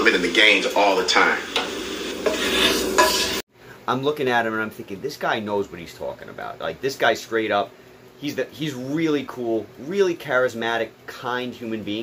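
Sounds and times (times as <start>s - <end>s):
utensil scraping eggs from pan: 2.0s - 3.4s.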